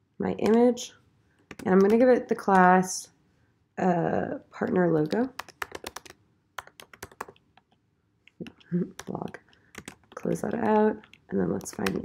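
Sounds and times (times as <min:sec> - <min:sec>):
computer keyboard typing: 0:00.4 - 0:00.8, 0:01.5 - 0:02.8, 0:04.7 - 0:07.7, 0:08.4 - 0:12.0.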